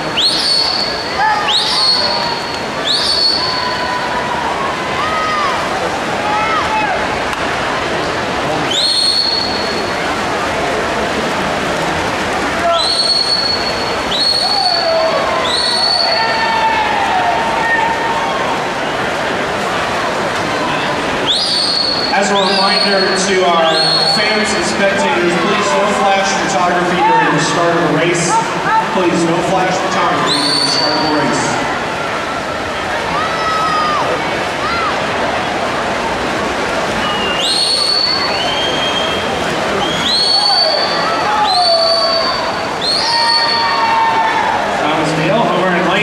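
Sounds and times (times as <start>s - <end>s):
spectators cheering and yelling: 0.0s - 46.0s
shrill whistles: 0.2s - 3.8s, 8.7s - 9.9s, 12.7s - 16.4s, 21.2s - 24.2s, 30.3s - 31.1s, 37.0s - 44.0s.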